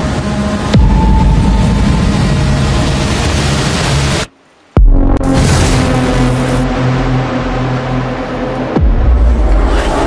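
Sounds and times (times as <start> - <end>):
dense rumbling noise: 0.0 - 10.0.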